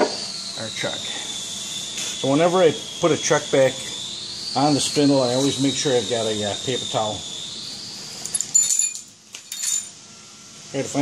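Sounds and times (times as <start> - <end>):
light clinks: 8.2 - 10.0.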